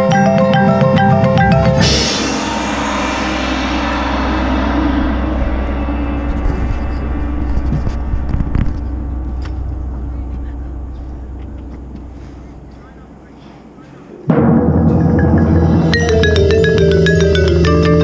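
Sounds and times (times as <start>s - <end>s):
crashing cymbals: 1.8s - 12.9s
ensemble held chord: 1.8s - 13.4s
low steady rumble: 2.8s - 13.8s.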